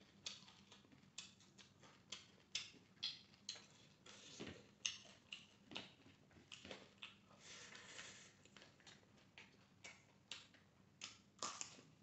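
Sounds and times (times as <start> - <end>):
wet chewing mouth clicks: 0.1 - 3.8, 4.8 - 7.2.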